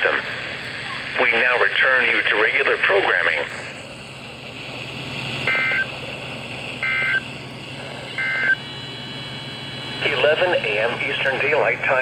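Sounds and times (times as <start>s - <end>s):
harsh two-tone data chirps: 5.4s - 6.0s, 6.7s - 7.4s, 8.1s - 9.0s.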